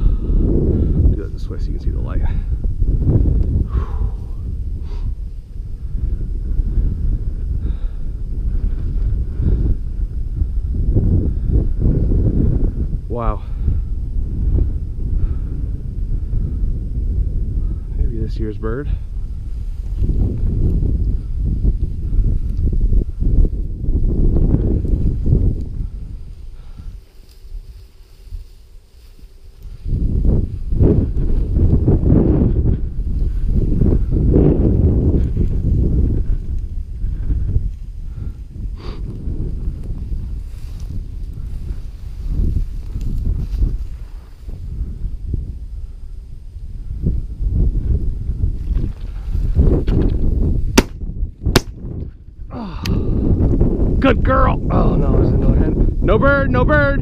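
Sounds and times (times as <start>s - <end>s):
wind buffeting microphone: 0.0s - 57.0s
footsteps through dry grass: 19.0s - 52.2s
sharp cracks: 50.8s - 51.9s.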